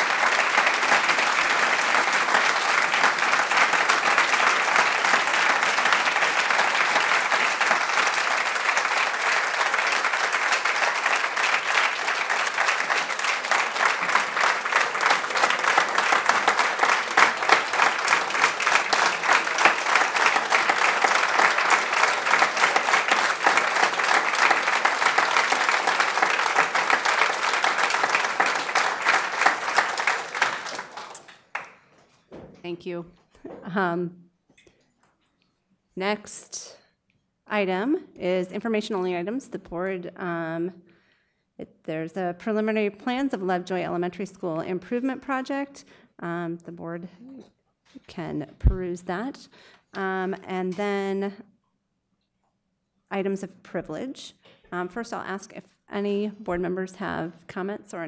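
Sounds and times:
people applauding: 0.0s - 32.0s.

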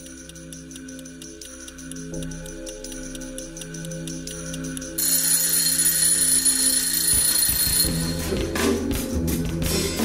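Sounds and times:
alarm clock ringing: 0.0s - 8.8s.

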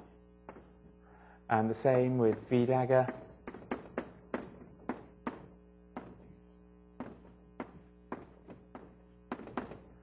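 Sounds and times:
steady low hum: 0.0s - 10.0s
chalk tapping on board: 2.1s - 6.3s.

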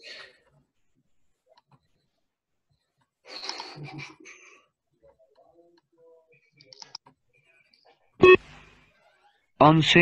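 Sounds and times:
short electronic beep: 8.2s - 8.5s.

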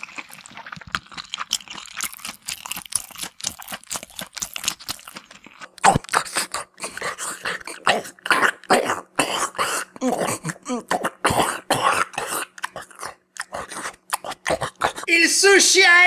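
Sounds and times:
smacking and chewing: 0.0s - 15.1s
throaty grunts: 5.9s - 15.1s.

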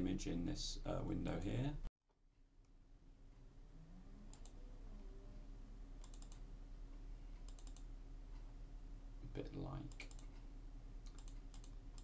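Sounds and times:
faint steady hum: 0.0s - 12.0s
quiet computer mouse clicks: 4.3s - 4.6s, 6.0s - 6.4s, 7.3s - 8.4s, 9.8s - 12.0s.

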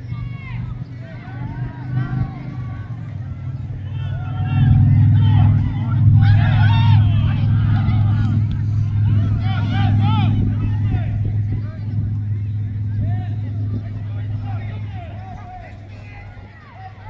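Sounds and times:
distant players shouting: 0.0s - 17.0s
low motor hum: 0.0s - 17.0s.

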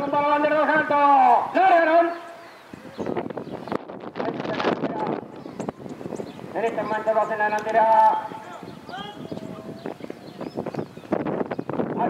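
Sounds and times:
race commentator speaking: 6.6s - 9.8s.

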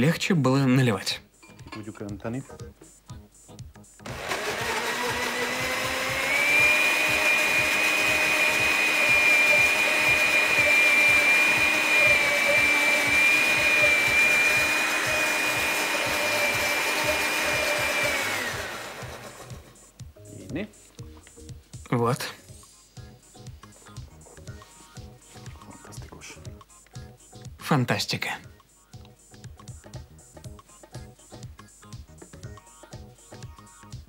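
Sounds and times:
blender motor whining: 4.0s - 19.8s.

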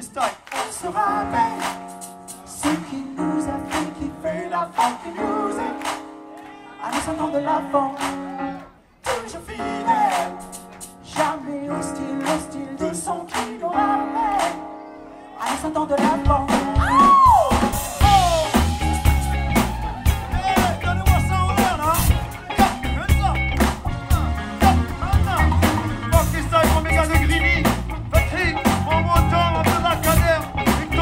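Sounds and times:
funk band playing: 0.0s - 31.0s
held keyboard chord: 1.0s - 6.7s, 9.6s - 15.3s.

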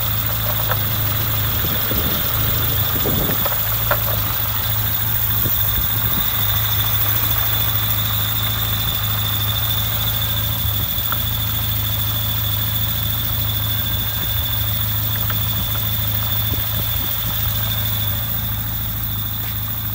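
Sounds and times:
car engine idling: 0.0s - 19.9s
high-pitched whine: 0.0s - 19.9s.

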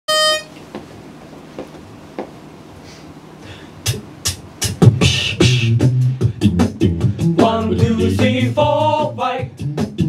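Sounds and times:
pitch pipe note: 0.1s - 0.6s.

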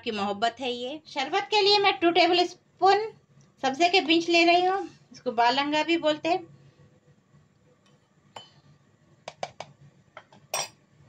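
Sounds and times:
glass and kitchenware clinking: 8.4s - 8.6s, 10.2s - 10.8s.

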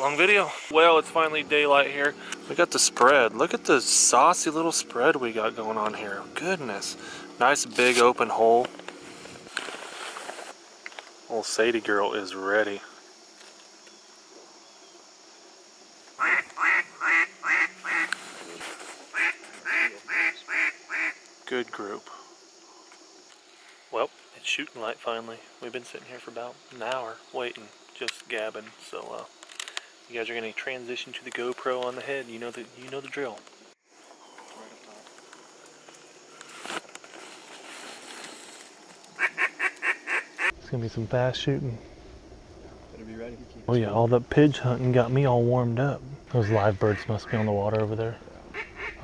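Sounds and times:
insects hissing: 0.0s - 49.0s
brief rustle: 7.7s - 11.2s, 18.0s - 19.7s, 34.3s - 39.1s
duck quacking: 16.2s - 18.1s, 19.1s - 21.2s, 39.2s - 40.5s, 48.5s - 49.0s.

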